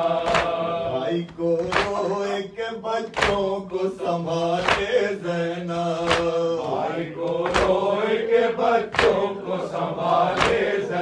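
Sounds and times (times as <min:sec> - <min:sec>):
man chanting a lament: 0:00.0 - 0:07.3
chest-beating slaps: 0:00.2 - 0:00.7, 0:01.3 - 0:02.3, 0:03.2 - 0:03.5, 0:04.6 - 0:05.0, 0:06.1 - 0:07.8, 0:08.9 - 0:09.3, 0:10.3 - 0:10.8.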